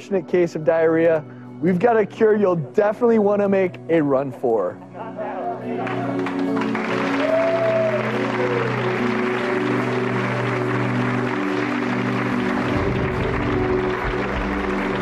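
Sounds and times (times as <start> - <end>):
break music with sustained notes: 4.8 - 15.0
audience applauding: 5.7 - 15.0.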